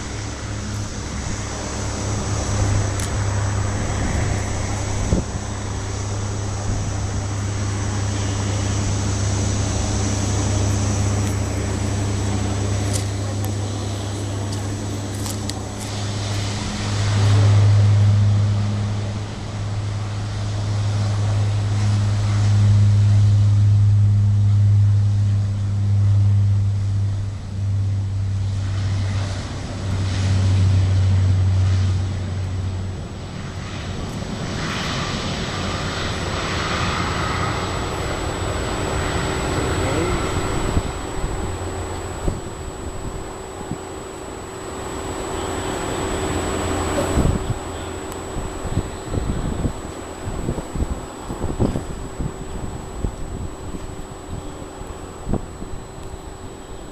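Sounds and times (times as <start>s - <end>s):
aircraft rushing sound: 0.0s - 56.9s
turboprop aircraft drone: 0.0s - 56.9s.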